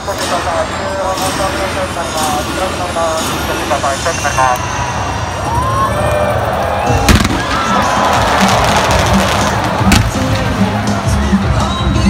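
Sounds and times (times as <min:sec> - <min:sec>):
stadium music: 0:00.0 - 0:12.0
crowd cheering: 0:05.0 - 0:12.0
fireworks going off: 0:06.8 - 0:12.0
sharp firework bangs: 0:07.0 - 0:10.6.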